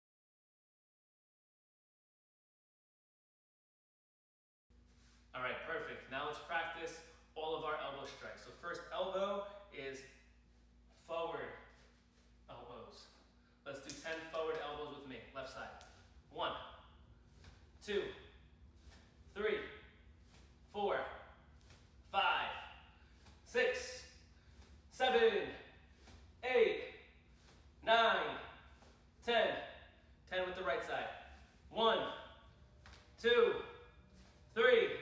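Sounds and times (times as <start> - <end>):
faint steady hum: 4.7 - 35.0
man calling out: 19.3 - 19.9, 22.1 - 22.8, 23.5 - 24.1, 26.4 - 27.0, 27.8 - 28.6, 29.2 - 32.3, 33.2 - 33.8, 34.5 - 35.0.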